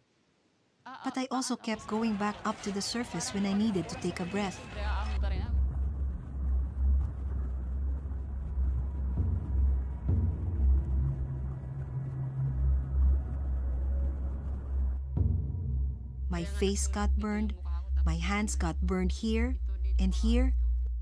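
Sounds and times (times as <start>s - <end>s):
steady low hum: 2.8s - 21.0s
deep surging low rumble: 4.7s - 21.0s.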